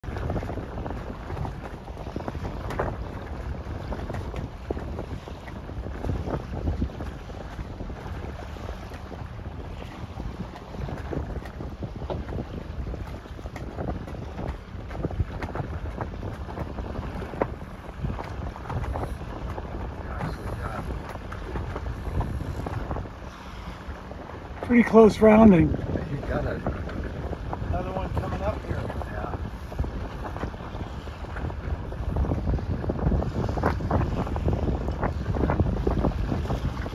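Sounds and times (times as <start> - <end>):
wind buffeting microphone: 0.0 - 36.9.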